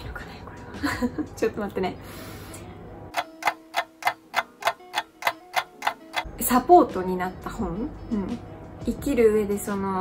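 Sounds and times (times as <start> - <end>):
clock ticking: 3.1 - 6.3.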